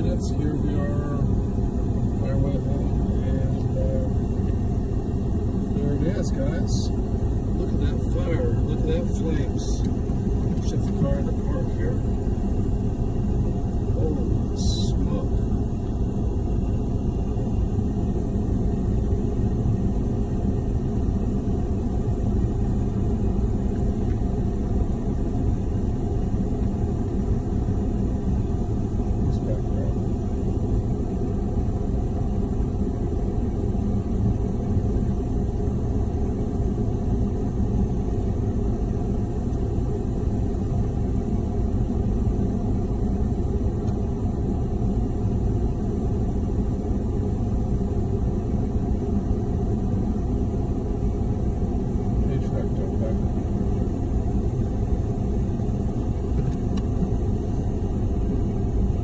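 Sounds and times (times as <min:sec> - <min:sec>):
car idling: 0:00.0 - 0:59.0
faint steady hum: 0:00.0 - 0:59.0.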